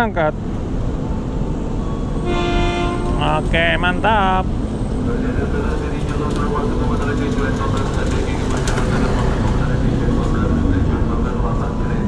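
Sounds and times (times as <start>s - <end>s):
train horn: 2.2s - 3.4s.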